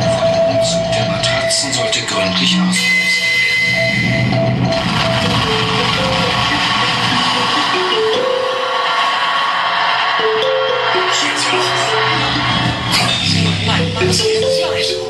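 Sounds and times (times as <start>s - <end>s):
harsh noise music: 0.0s - 15.0s
held-note melody: 10.2s - 15.0s.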